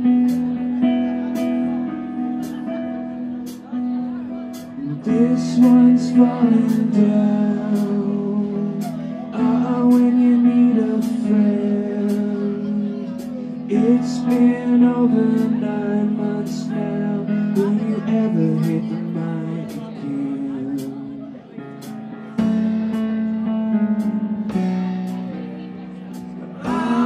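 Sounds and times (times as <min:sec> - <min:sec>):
guitar: 0:00.0 - 0:27.0
live band playing: 0:00.0 - 0:27.0.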